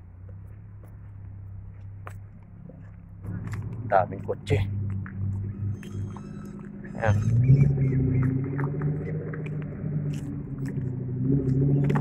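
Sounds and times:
sports car engine running: 0:00.2 - 0:12.0.

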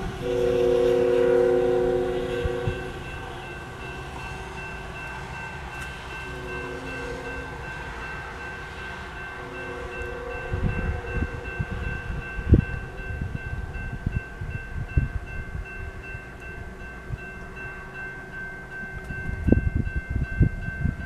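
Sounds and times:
distant locomotive horn: 0:00.0 - 0:13.8
railroad crossing bell ringing: 0:00.0 - 0:21.0.

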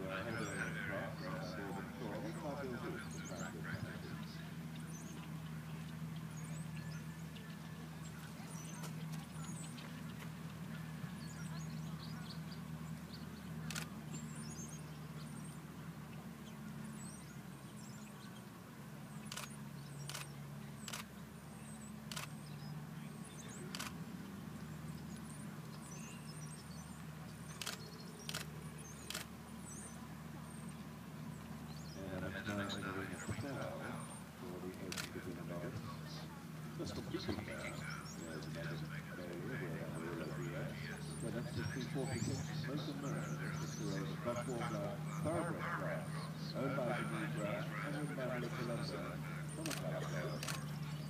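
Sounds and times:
steady low hum: 0:00.0 - 0:51.0
faint bird chirps: 0:00.1 - 0:34.3
sharp clicks: 0:13.6 - 0:13.9, 0:19.2 - 0:21.2, 0:22.0 - 0:22.4, 0:23.7 - 0:24.0, 0:27.5 - 0:29.3, 0:49.6 - 0:50.7.

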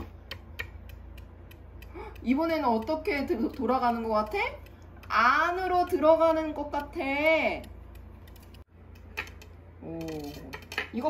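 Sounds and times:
spinning disc ticking and rattling: 0:00.2 - 0:09.6.

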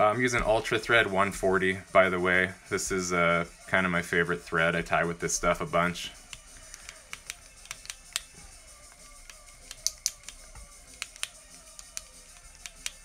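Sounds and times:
small clicks and ticks: 0:06.3 - 0:13.0.

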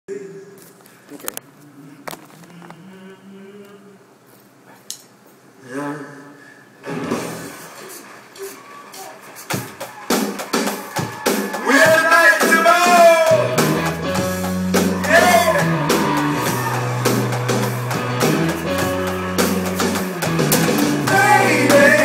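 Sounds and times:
person singing: 0:01.7 - 0:04.1, 0:18.0 - 0:22.0
room chatter: 0:06.8 - 0:22.0
live rock band: 0:09.5 - 0:22.0.

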